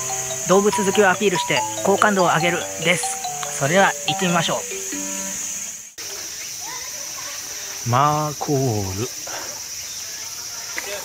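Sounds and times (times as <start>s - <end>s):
background music held tones: 0.0s - 5.7s
high-pitched insect drone: 0.0s - 6.8s.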